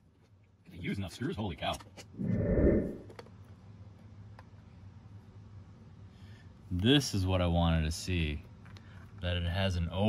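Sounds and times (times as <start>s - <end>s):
low rushing noise: 2.2s - 3.1s.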